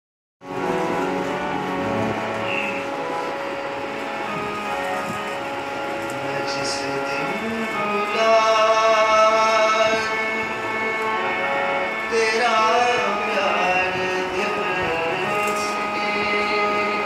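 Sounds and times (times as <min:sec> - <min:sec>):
harmonium playing held chords: 0:00.4 - 0:17.0.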